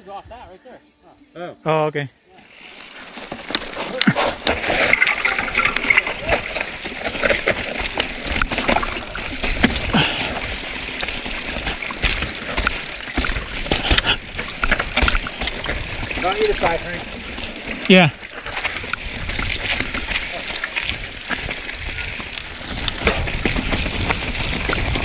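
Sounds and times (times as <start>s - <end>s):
bike knocking and rattling on rocks: 2.4s - 25.0s
bike tyre and air rush: 2.4s - 25.0s.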